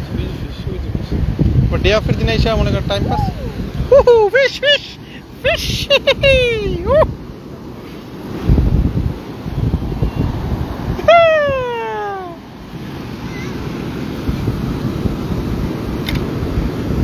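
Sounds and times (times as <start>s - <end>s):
breaking surf: 0.0s - 17.0s
wind buffeting microphone: 0.0s - 17.0s
man's long falling cry: 11.0s - 12.4s.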